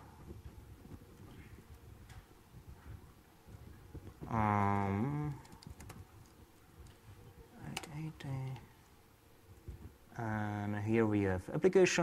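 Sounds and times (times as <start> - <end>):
person saying um: 4.3 - 5.4.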